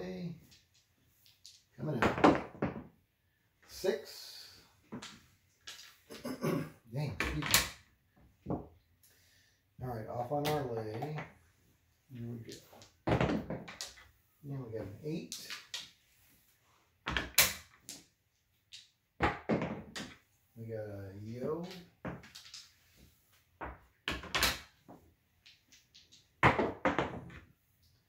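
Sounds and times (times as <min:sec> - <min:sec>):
clay chips set down: 0:04.9 - 0:06.2, 0:12.2 - 0:14.1, 0:15.3 - 0:16.0, 0:21.6 - 0:23.0
dice clacking against wall: 0:04.9 - 0:06.2, 0:12.4 - 0:14.1, 0:15.3 - 0:16.0, 0:17.0 - 0:20.2, 0:21.6 - 0:23.0, 0:23.6 - 0:27.4.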